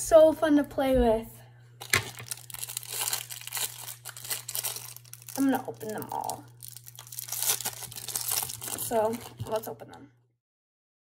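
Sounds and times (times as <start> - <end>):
plastic wrappers crinkling: 1.8 - 9.8.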